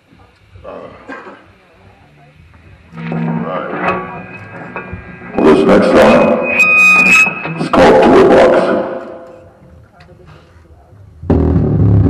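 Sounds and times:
held low instrument note: 2.8s - 8.1s.

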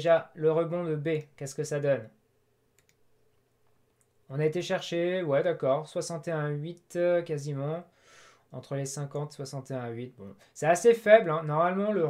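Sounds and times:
faint computer mouse clicks: 2.8s - 4.2s.

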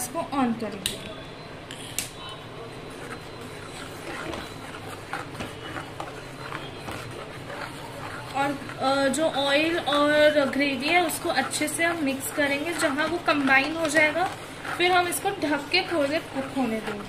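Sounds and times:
spatula stirring thick gravy: 2.4s - 17.0s.

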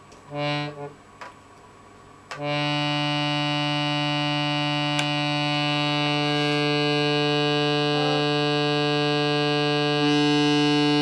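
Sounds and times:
fan organ drone notes: 0.3s - 1.2s, 2.3s - 11.0s.

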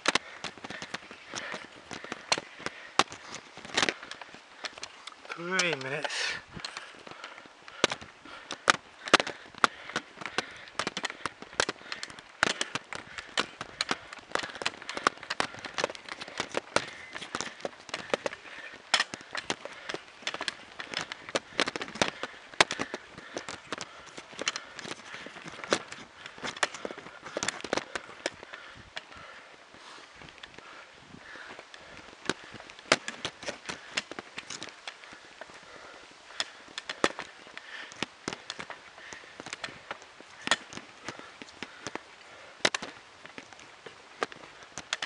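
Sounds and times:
camera rattle and handling clicks: 0.0s - 29.2s, 31.5s - 35.6s, 36.3s - 45.0s.

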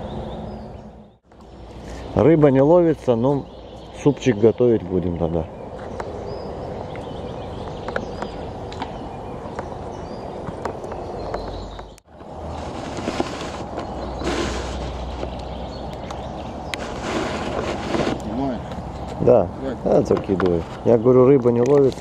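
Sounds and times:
steady outdoor background noise: 0.0s - 22.0s.

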